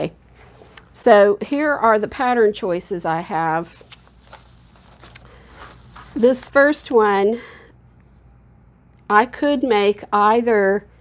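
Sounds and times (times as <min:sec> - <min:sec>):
paper rustling: 0:03.6 - 0:06.4.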